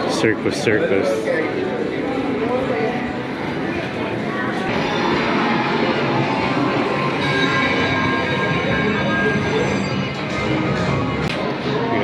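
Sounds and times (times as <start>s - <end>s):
slot machine electronic tones: 4.8s - 11.1s.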